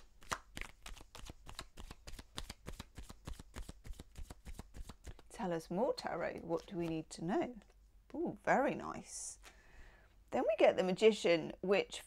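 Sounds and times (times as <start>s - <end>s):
cards being shuffled: 0.0s - 5.3s.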